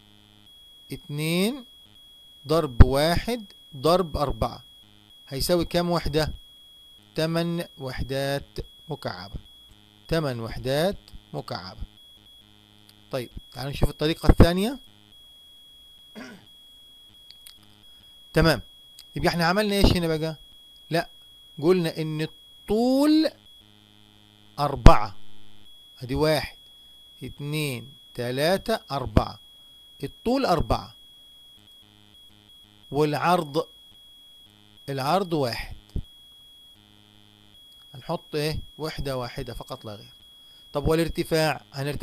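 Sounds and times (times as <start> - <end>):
high-pitched electrical whine: 0.0 - 42.0
soft clicks: 17.2 - 17.8.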